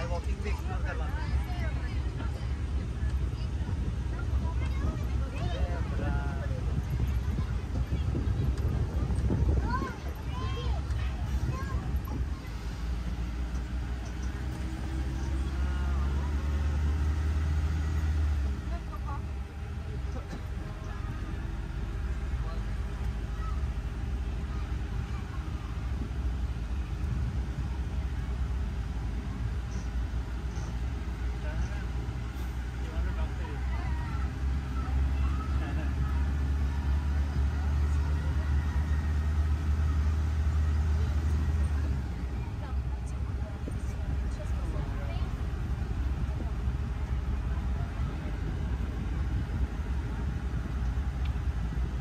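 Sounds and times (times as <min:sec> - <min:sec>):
faint passenger voices: 0:00.0 - 0:52.0
shuttle vehicle rumbling on road: 0:00.0 - 0:52.0.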